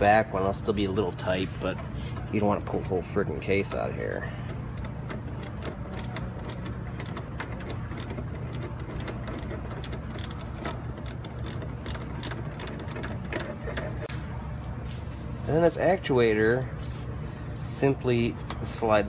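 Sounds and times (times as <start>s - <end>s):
hand ratchet clicking: 4.5s - 13.8s.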